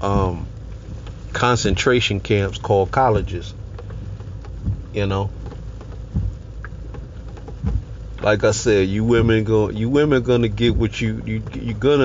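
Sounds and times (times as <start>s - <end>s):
soft low thumps: 0.0s - 12.0s
steady low hum: 0.0s - 12.0s.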